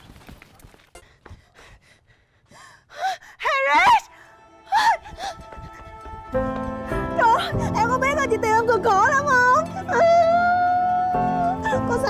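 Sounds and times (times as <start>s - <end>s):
faint background music: 3.4s - 12.0s.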